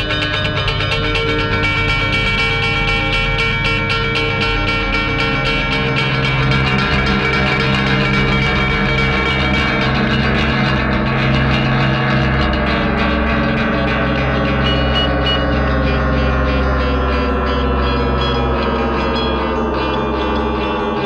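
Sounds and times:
electric guitar: 0.0s - 21.0s
gong-like ringing: 3.3s - 21.0s.

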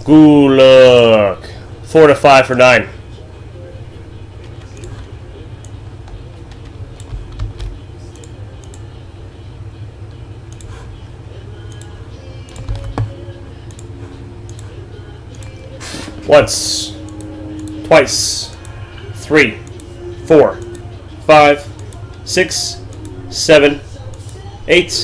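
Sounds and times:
low steady hum: 0.0s - 25.0s
keyboard and mouse clicks: 4.4s - 8.8s, 11.7s - 13.9s, 15.3s - 15.6s.

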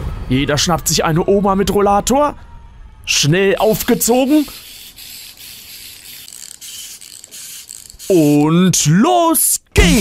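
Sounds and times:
wind-up toy ratcheting: 3.6s - 8.6s.

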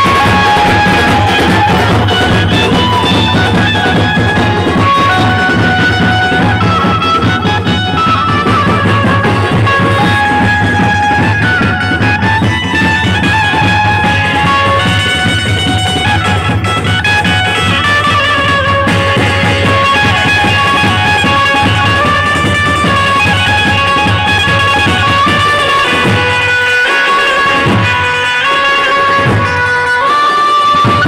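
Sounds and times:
plucked string melody: 0.0s - 31.0s
steady low beat: 1.4s - 12.6s.

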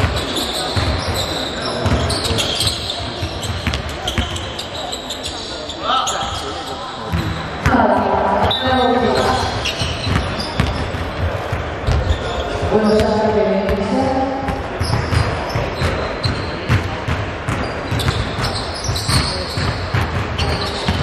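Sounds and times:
basketball bouncing on wooden floor: 3.2s - 4.4s, 7.1s - 12.2s, 12.8s - 21.0s.

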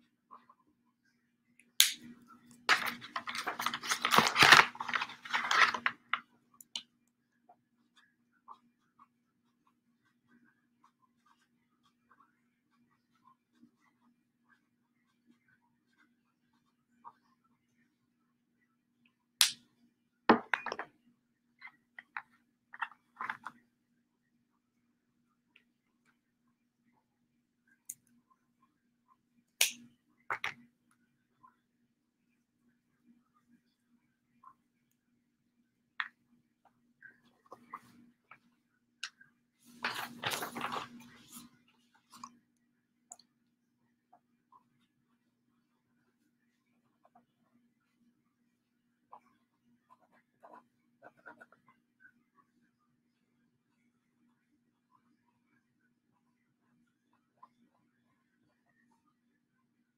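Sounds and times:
faint steady hum: 0.0s - 59.9s
paper crinkling: 2.7s - 6.2s, 39.7s - 41.5s.

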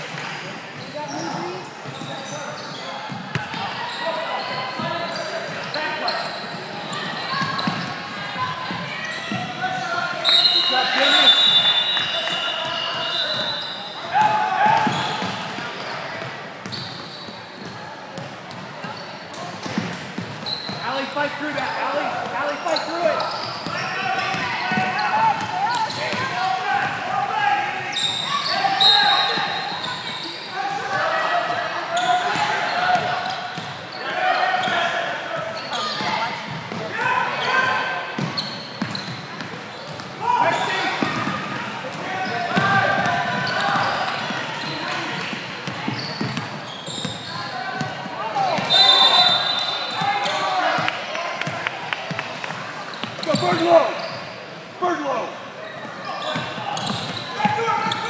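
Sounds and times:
people shouting in echoing hall: 8.4s - 15.2s, 34.0s - 38.2s.

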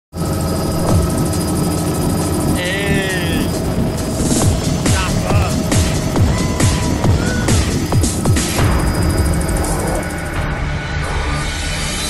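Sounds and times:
helicopter engine and rotor: 0.1s - 10.9s
high voice calling out: 2.6s - 3.5s, 4.9s - 5.6s.

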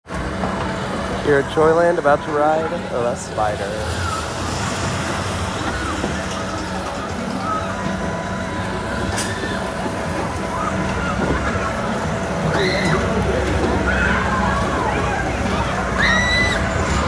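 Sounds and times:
ride machinery humming and whining: 0.0s - 17.0s
faint voices: 0.1s - 17.0s.

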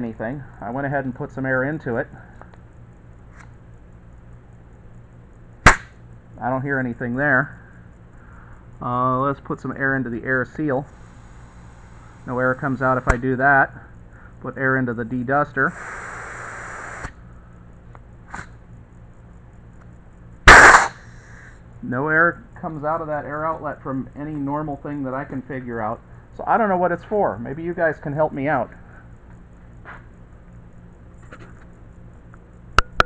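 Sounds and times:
compressed air blast with hiss: 10.9s - 12.6s, 15.7s - 17.2s, 18.3s - 18.6s, 20.5s - 21.5s.

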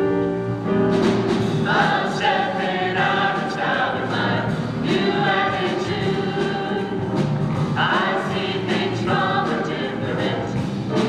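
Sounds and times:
vocal jazz ensemble singing: 1.4s - 11.0s.

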